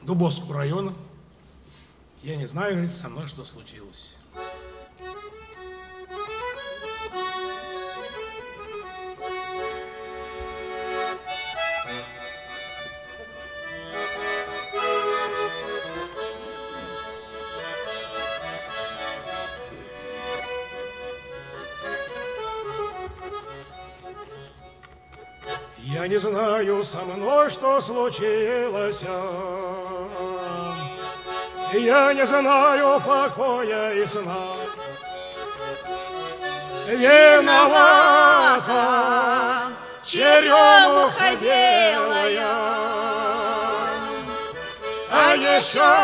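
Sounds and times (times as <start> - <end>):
button accordion playing: 4.3 - 46.0
man singing: 25.8 - 31.0, 31.6 - 34.8, 36.8 - 44.4, 45.1 - 46.0.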